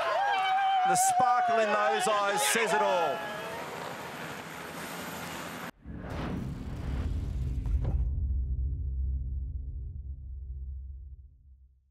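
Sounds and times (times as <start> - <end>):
rushing racetrack ambience: 0.0 - 5.8.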